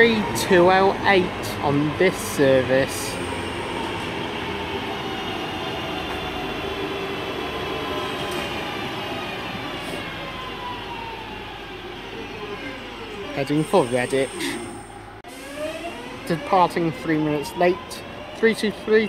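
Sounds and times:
train wheels rumbling on rail: 0:00.0 - 0:14.6.

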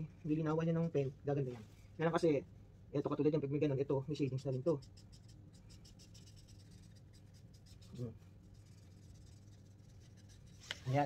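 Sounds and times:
marker scratching on paper: 0:04.2 - 0:10.8.

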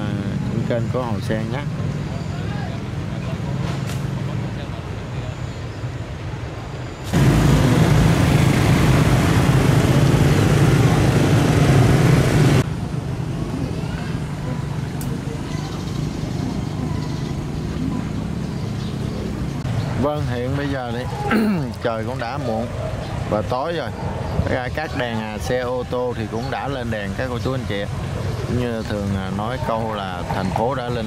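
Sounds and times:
motorbikes passing close by: 0:00.0 - 0:05.3, 0:07.1 - 0:31.0
traffic engine hum: 0:00.0 - 0:31.0.

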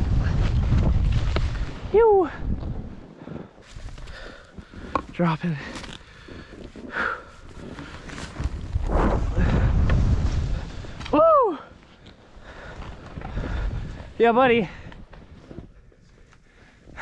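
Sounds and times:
wind blasting microphone: 0:00.0 - 0:04.0, 0:06.2 - 0:11.2, 0:12.6 - 0:14.9
skis rushing over snow: 0:00.0 - 0:11.2
person shouting: 0:11.2 - 0:11.6.

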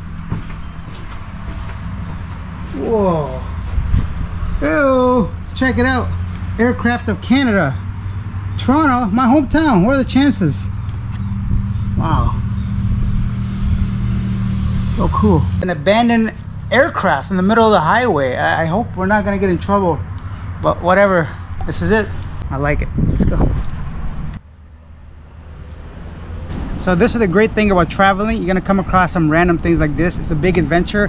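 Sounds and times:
wind rumbling on microphone: 0:00.0 - 0:05.6, 0:09.4 - 0:15.6, 0:21.5 - 0:24.4.

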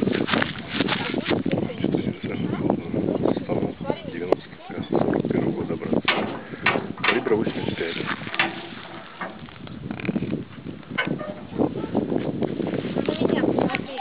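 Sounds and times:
people talking outdoors: 0:00.0 - 0:14.0
sharp clicks or knocks: 0:06.1 - 0:07.4, 0:08.1 - 0:10.2.

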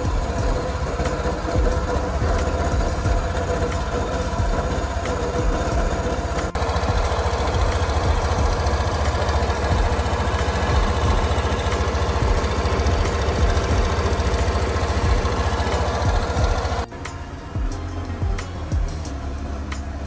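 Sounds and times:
scooter engine idling: 0:00.0 - 0:20.0.

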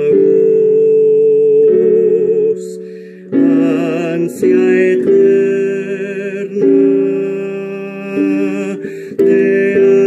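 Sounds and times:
instrumental accompaniment: 0:00.0 - 0:10.0
man singing a hymn: 0:00.0 - 0:10.0.

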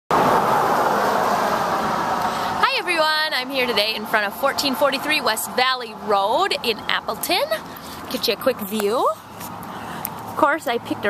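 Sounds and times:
loud outdoor rushing noise: 0:00.1 - 0:06.6.

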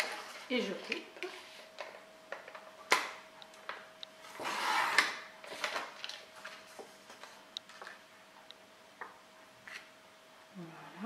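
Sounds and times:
card handling clicks and rustles: 0:04.9 - 0:08.0.

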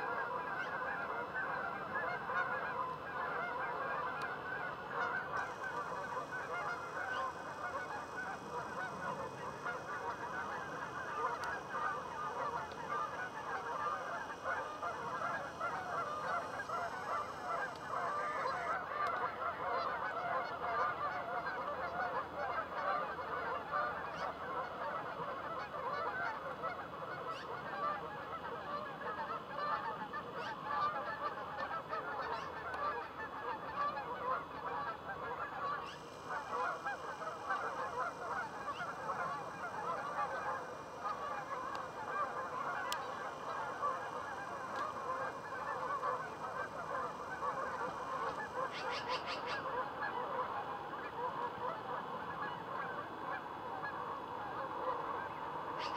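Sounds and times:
geese honking: 0:00.0 - 0:55.9.

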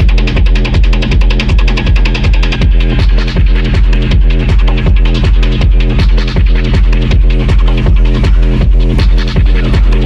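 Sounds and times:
heavy kick drum: 0:00.0 - 0:10.0
sustained low bass: 0:00.0 - 0:10.0.

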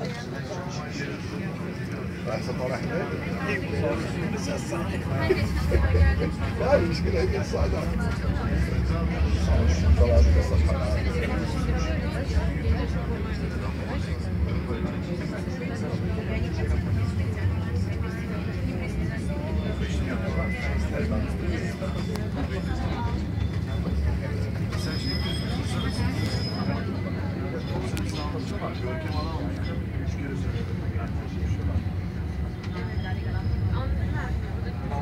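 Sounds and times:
passengers talking: 0:00.0 - 0:35.0
tram rumbling: 0:00.0 - 0:35.0.

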